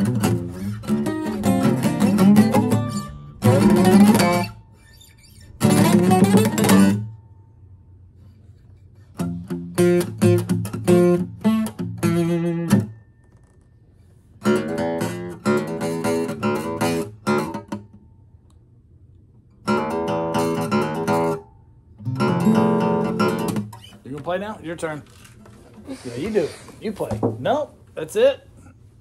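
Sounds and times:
acoustic guitar strummed chords: 0:00.0 - 0:04.7, 0:05.6 - 0:07.4, 0:09.2 - 0:13.1, 0:14.4 - 0:18.0, 0:19.6 - 0:23.8.

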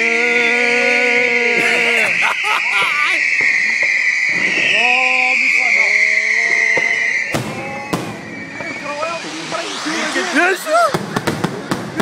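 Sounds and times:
firework crackling: 0:00.0 - 0:12.0
firework whistle: 0:00.0 - 0:12.0
firework bangs: 0:01.6 - 0:12.0.

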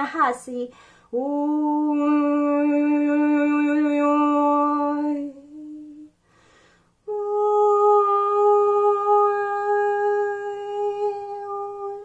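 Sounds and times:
woman breathing: 0:00.7 - 0:01.2, 0:06.2 - 0:07.0
woman singing long note: 0:01.2 - 0:06.1, 0:07.1 - 0:12.0.

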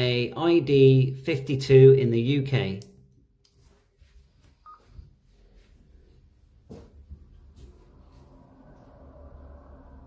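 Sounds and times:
short electronic beep: 0:04.6 - 0:04.9.

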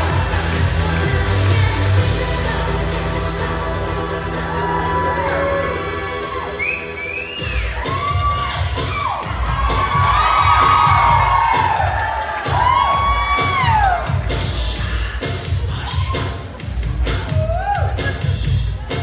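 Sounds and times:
upbeat dance music: 0:00.0 - 0:19.0
audience cheering and whooping: 0:04.2 - 0:14.5, 0:15.7 - 0:16.5, 0:17.2 - 0:18.3.

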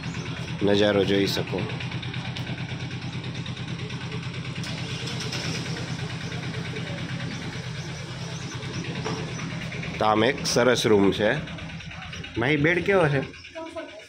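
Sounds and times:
engine idling: 0:00.0 - 0:14.0.

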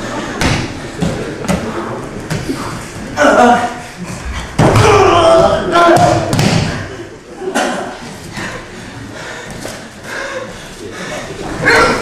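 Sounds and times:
person shouting: 0:04.6 - 0:06.3.

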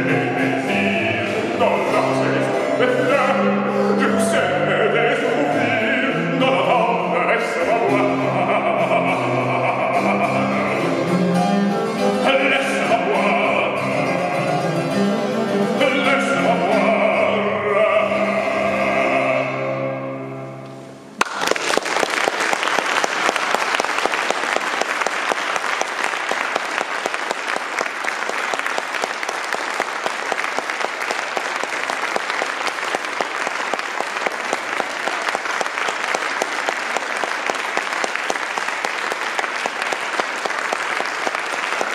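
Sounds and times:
audience applause: 0:21.2 - 0:41.9.

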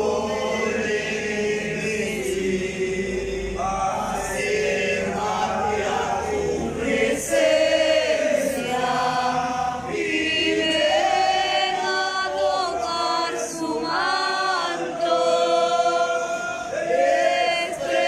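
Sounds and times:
congregation singing in chorus: 0:00.0 - 0:18.0.

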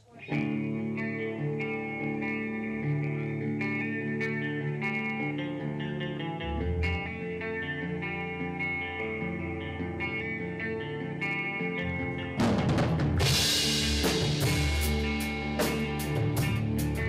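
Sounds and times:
bass guitar: 0:00.0 - 0:17.0
electric guitar chords: 0:00.0 - 0:17.0
keyboard chords: 0:00.4 - 0:17.0
drum and cymbal hits: 0:12.4 - 0:17.0.

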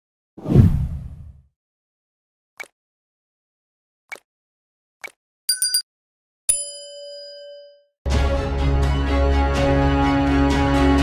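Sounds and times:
deep whoosh: 0:00.4 - 0:01.4.

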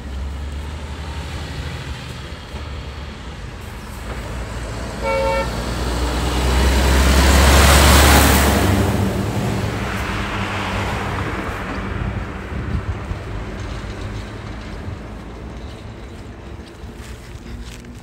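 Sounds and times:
truck driving past: 0:00.0 - 0:18.0
truck horn honking: 0:04.8 - 0:08.9.

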